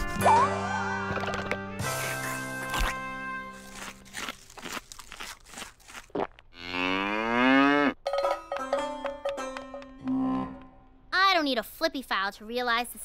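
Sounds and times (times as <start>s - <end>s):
music: 0.0s - 4.1s, 8.1s - 10.7s
cow mooing: 6.6s - 8.0s.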